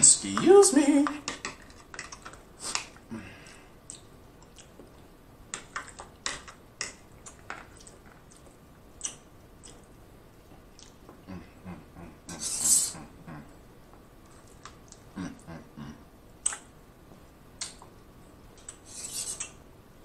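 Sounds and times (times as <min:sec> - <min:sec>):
mouth chewing soft food: 0:03.8 - 0:05.1, 0:07.2 - 0:11.8, 0:14.2 - 0:15.6.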